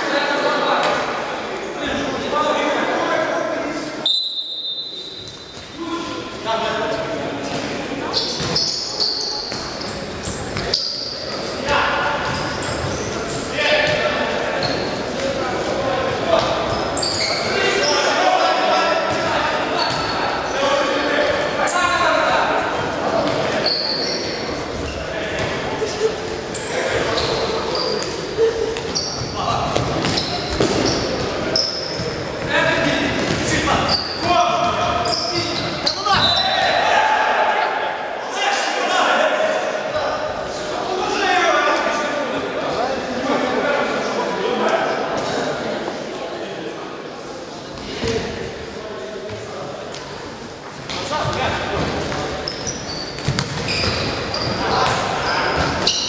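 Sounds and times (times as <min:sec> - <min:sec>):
shoe squeaks: 0:04.0 - 0:06.0, 0:08.1 - 0:14.0, 0:14.6 - 0:15.1, 0:16.4 - 0:18.2, 0:19.1 - 0:21.4, 0:23.4 - 0:25.1, 0:25.8 - 0:32.9, 0:33.5 - 0:36.8, 0:52.2 - 0:56.0.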